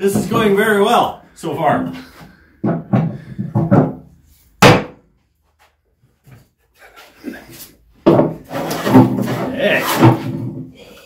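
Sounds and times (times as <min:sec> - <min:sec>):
wooden mallet striking wood: 0:04.6 - 0:05.0
hand plane scraping wood: 0:08.4 - 0:10.5.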